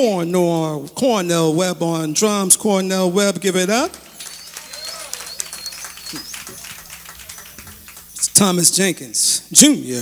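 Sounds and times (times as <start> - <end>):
light audience applause: 3.6 - 8.9
faint voices calling out: 4.0 - 8.2.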